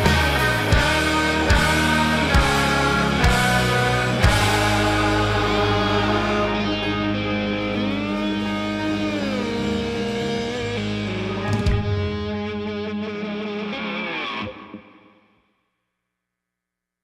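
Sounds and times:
distorted electric guitar chord: 0.0s - 14.8s.

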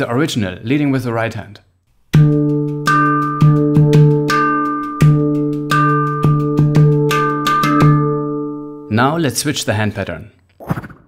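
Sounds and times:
handpan played by hand: 2.1s - 8.9s.

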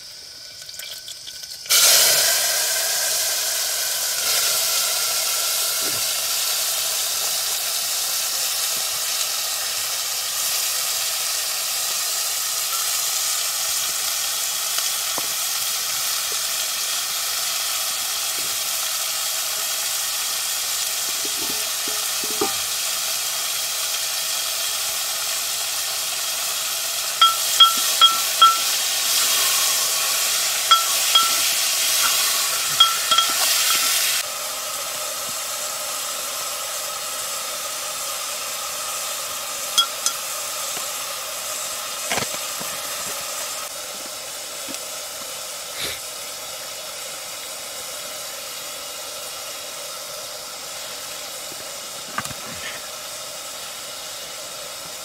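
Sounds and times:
food sizzling in a pan: 0.0s - 55.0s
metal ladle clinking on pan: 27.2s - 29.4s, 30.7s - 34.2s, 39.8s - 40.2s.

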